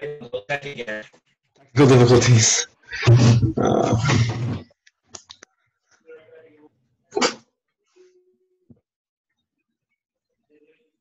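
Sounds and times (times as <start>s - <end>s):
choppy voice on a call: 1.8s - 4.6s.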